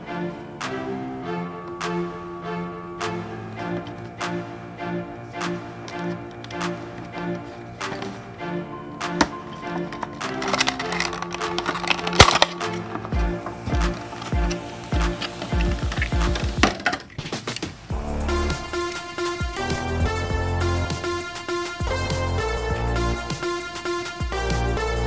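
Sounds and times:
background music: 0:00.0 - 0:25.0
plastic packaging crackling and snapping: 0:10.0 - 0:14.4.

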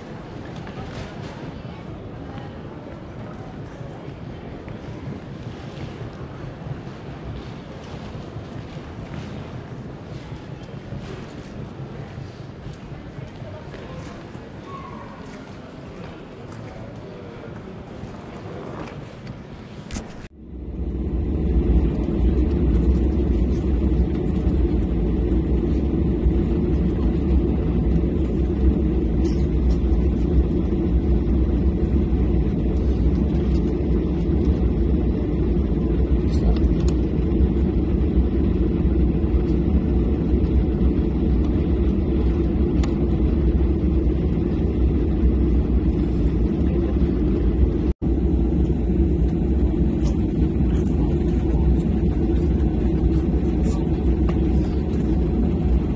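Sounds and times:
low rumble in airliner cabin: 0:00.0 - 0:55.9
terminal hall ambience: 0:00.0 - 0:55.9.

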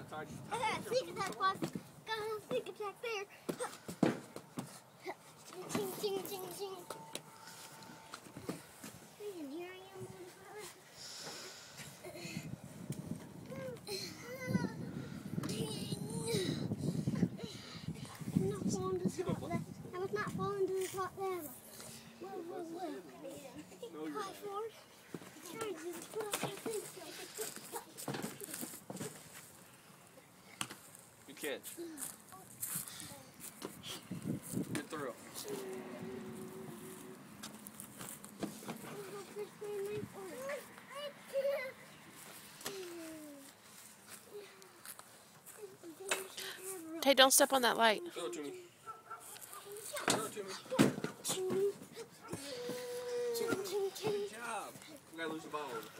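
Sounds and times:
children's voices: 0:13.4 - 0:28.6, 0:35.4 - 0:37.3, 0:38.8 - 0:47.0, 0:48.4 - 0:55.1
child calling out: 0:52.3 - 0:54.3.

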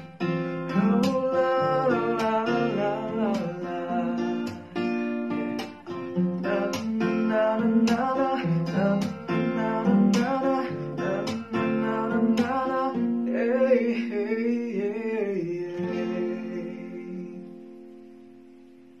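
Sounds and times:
acoustic guitar: 0:00.0 - 0:19.0
man singing: 0:00.6 - 0:04.8, 0:06.4 - 0:17.8.

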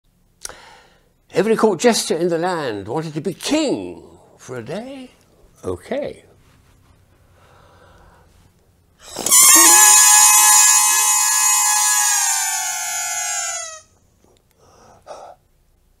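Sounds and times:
soft rustle: 0:06.2 - 0:07.4, 0:08.2 - 0:08.8
inflatable crown squealing: 0:09.0 - 0:13.9.

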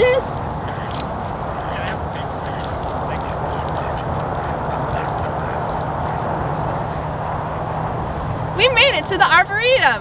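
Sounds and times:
ducks quacking: 0:00.0 - 0:08.3
outdoor background noise: 0:00.0 - 0:10.0.

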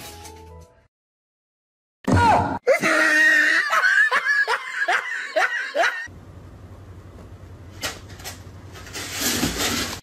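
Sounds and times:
person laughing hard: 0:02.7 - 0:06.1.

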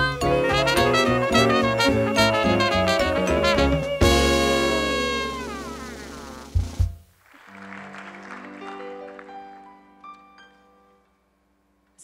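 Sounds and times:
swing band final chord: 0:00.2 - 0:07.0
low drum thuds: 0:06.1 - 0:07.1.

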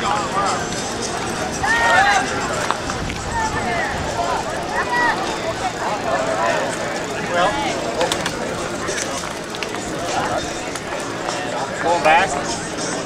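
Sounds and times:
outdoor background noise: 0:00.0 - 0:13.0
people talking outdoors: 0:00.0 - 0:13.0.

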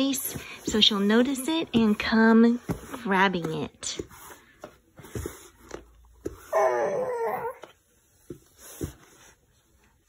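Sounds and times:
baby whining: 0:06.4 - 0:07.8.

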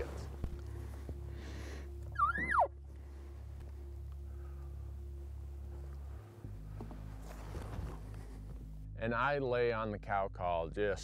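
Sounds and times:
low steady hum: 0:00.0 - 0:09.3
elk call: 0:02.1 - 0:02.8.

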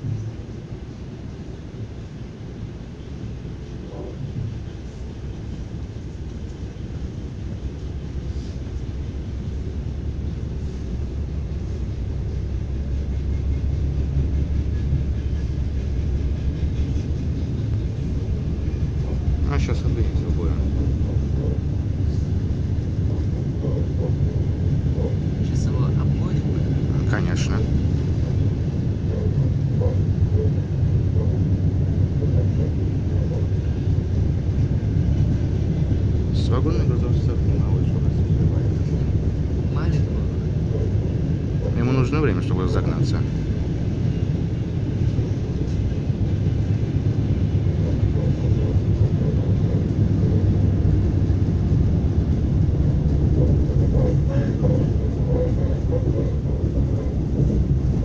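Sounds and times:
train rumbling on track: 0:00.0 - 0:58.0.

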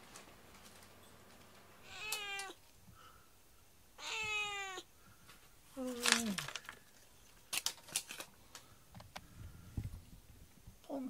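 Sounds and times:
cat meowing: 0:01.8 - 0:02.6, 0:04.0 - 0:04.9.

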